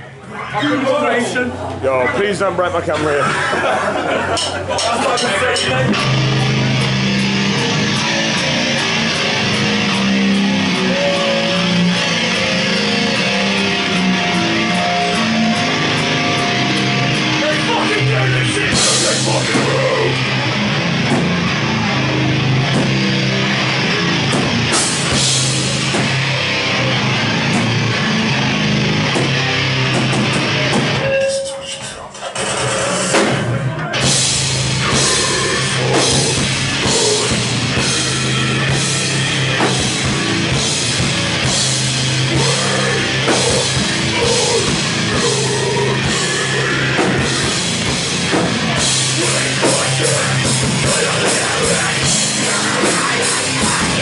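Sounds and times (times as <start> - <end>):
drums: 0.0 - 54.0
heavy metal band playing: 0.5 - 54.0
bass guitar: 1.3 - 54.0
electric guitars: 3.0 - 31.5, 32.3 - 54.0.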